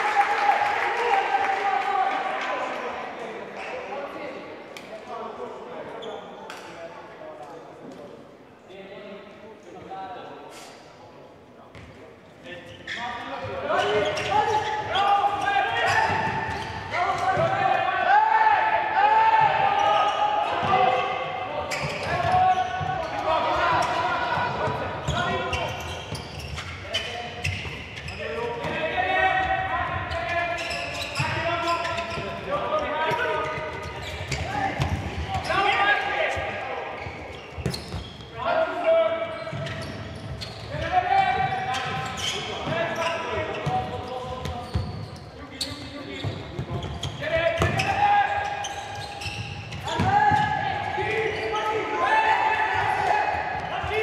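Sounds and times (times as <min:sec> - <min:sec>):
voices shouting in a hall: 0:00.0 - 0:06.8, 0:12.5 - 0:54.0.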